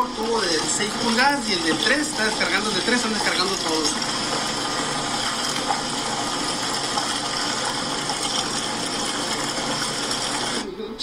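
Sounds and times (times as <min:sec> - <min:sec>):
water pouring from pipes: 0:00.0 - 0:10.6.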